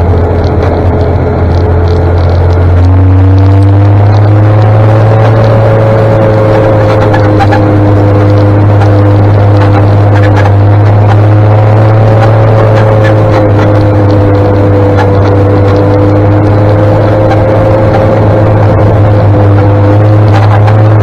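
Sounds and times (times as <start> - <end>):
armoured car engine droning: 0.0 - 21.0
drivetrain whine: 0.0 - 21.0.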